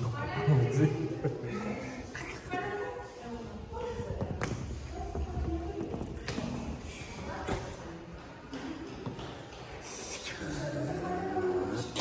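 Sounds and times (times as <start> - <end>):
echoing background voices: 0.0 - 12.0.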